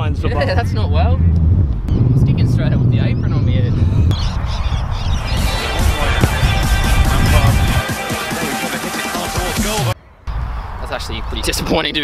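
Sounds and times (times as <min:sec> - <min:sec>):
wind rumbling on microphone: 0:00.0 - 0:07.8
background music with beat: 0:05.3 - 0:10.0.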